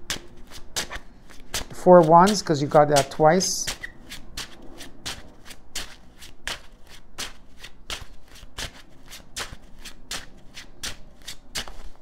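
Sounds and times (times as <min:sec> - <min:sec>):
cards being shuffled: 0:00.0 - 0:12.0.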